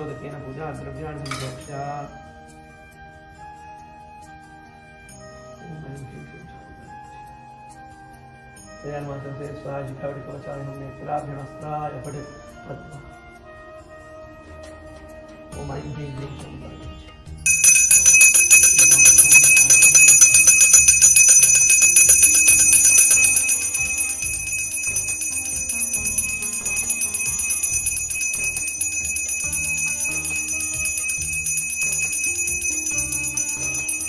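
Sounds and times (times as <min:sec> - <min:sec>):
hand bell ringing rapidly: 0:17.5 - 0:34.0.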